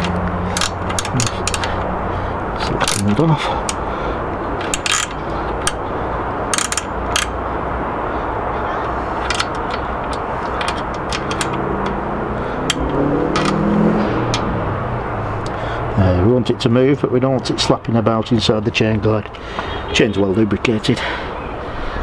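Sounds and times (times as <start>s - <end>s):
bicycle chain clinking: 0.0s - 1.8s, 4.6s - 7.5s
faint rising hum: 0.0s - 16.7s
steady background rumble: 0.0s - 19.5s.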